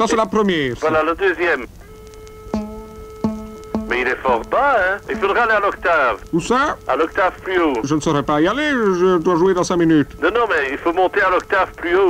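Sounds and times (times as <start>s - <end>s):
steady held tone: 1.8s - 7.9s
low plucked string: 2.5s - 5.8s.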